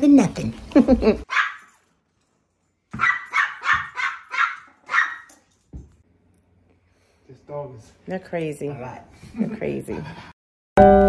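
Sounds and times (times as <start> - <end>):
small dog barking: 1.3 - 1.7, 3.0 - 5.4.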